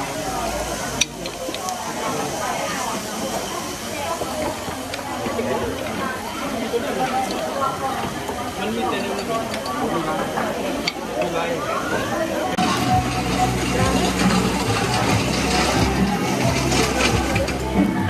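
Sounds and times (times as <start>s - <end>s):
indistinct chatter of voices: 0.0s - 18.0s
meat sizzling on a grill: 0.0s - 18.0s.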